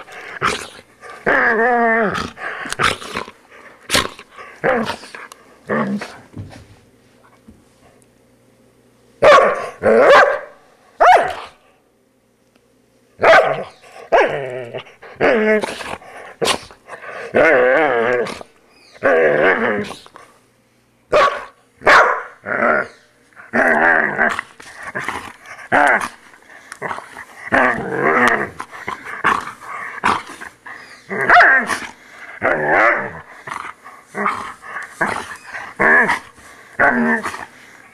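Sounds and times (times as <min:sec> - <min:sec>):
dog growling and barking: 0:00.0 - 0:06.3, 0:09.2 - 0:11.6, 0:13.2 - 0:20.2, 0:21.1 - 0:37.9.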